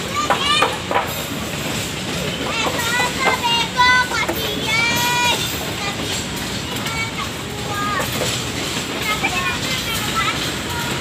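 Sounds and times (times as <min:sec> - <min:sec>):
children calling: 0:00.0 - 0:11.0
train rumbling past: 0:00.0 - 0:11.0.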